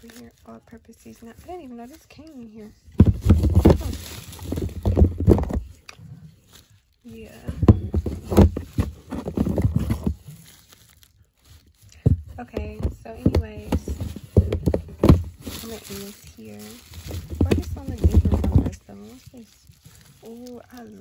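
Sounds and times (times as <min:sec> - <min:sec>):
bubble wrap crinkling: 0:00.0 - 0:21.0.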